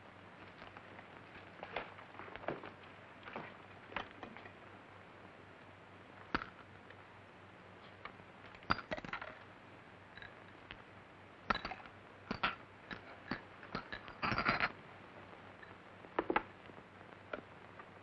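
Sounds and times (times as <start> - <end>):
film soundtrack hiss and hum: 0.0 - 18.0.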